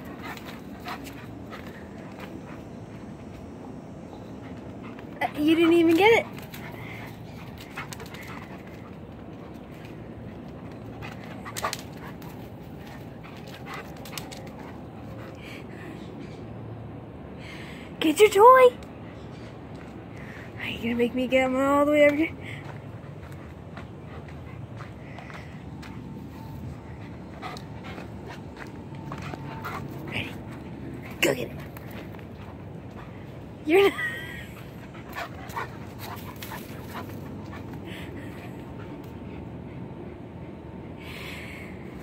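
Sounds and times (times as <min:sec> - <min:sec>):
dog panting: 0:00.0 - 0:16.2, 0:22.2 - 0:40.1.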